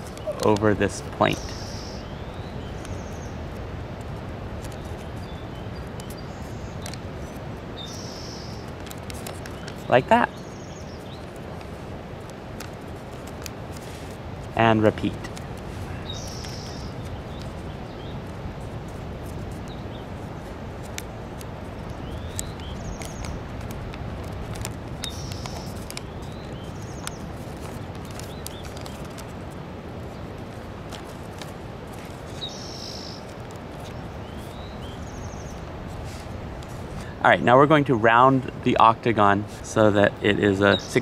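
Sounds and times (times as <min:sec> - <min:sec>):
small birds chirping: 0:00.0 - 0:41.0
paper being folded: 0:08.6 - 0:10.0, 0:11.2 - 0:32.5.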